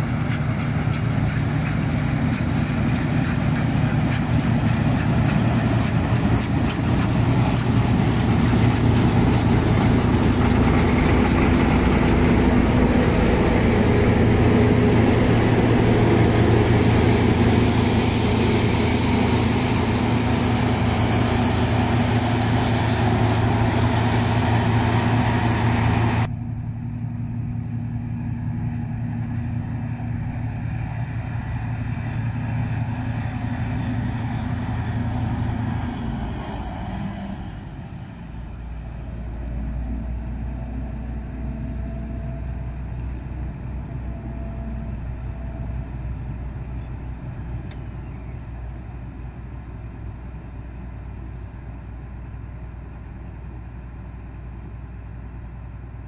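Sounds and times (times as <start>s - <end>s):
combine harvester engine drone: 0.0s - 56.0s
threshing noise: 1.1s - 26.3s.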